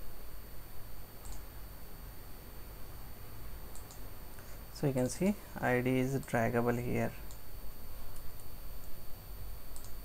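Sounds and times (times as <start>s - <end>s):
computer mouse clicks: 1.2s - 1.5s, 3.7s - 4.1s, 7.2s - 7.4s, 9.7s - 10.0s.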